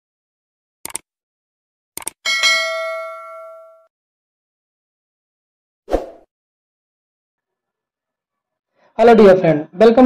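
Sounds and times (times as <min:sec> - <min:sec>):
quick clicks: 0:00.8 - 0:01.1, 0:02.0 - 0:02.2
bright bell ding: 0:02.3 - 0:03.9.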